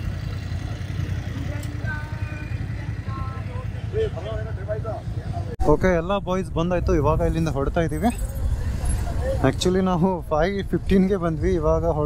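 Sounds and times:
voices chattering: 0.0s - 5.9s
motorcycle engines idling: 0.0s - 12.0s
passing traffic: 0.0s - 12.0s.

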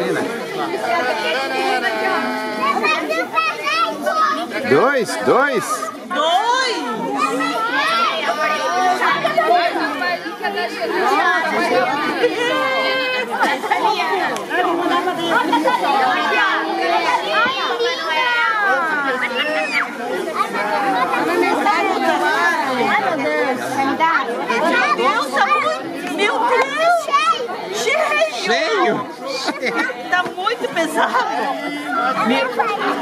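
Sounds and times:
adults and children chattering: 0.0s - 33.0s.

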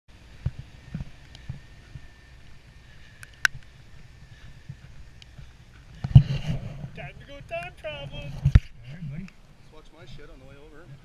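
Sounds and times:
footsteps on snow: 0.2s - 9.5s.

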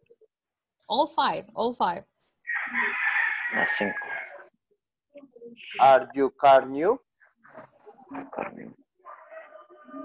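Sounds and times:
rooster crowing: 2.5s - 4.5s.

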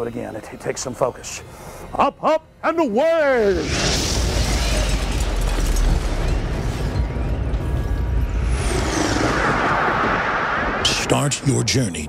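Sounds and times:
rushing thrust noise: 3.6s - 11.4s
high falling whistle: 6.8s - 10.9s.

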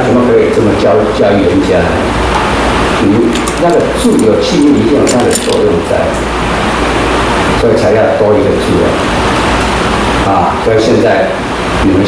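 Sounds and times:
man lecturing: 0.0s - 2.1s, 3.0s - 6.2s, 7.6s - 9.0s, 10.2s - 12.0s.

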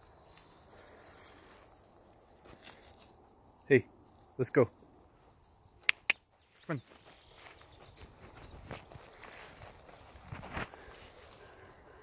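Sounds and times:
footsteps crunching on dry grass: 0.0s - 12.0s.

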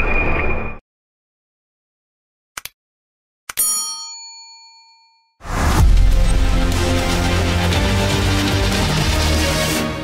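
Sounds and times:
click: 2.6s - 2.8s
bright bell chime: 3.6s - 5.4s.

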